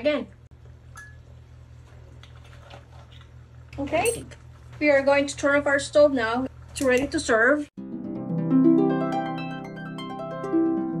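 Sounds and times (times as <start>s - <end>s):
woman speaking: 0.0s - 0.4s, 3.8s - 7.7s.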